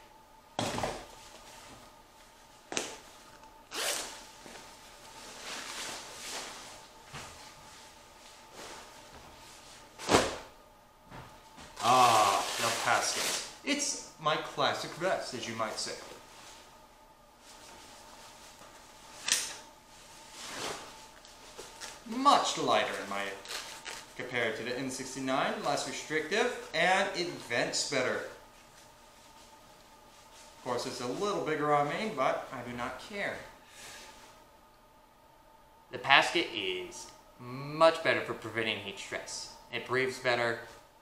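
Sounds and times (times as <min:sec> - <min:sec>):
nylon vest rustling: 0:01.0 - 0:10.5, 0:17.4 - 0:24.2
zipper rasp: 0:03.7 - 0:04.1
sharp snap: 0:19.2 - 0:19.6.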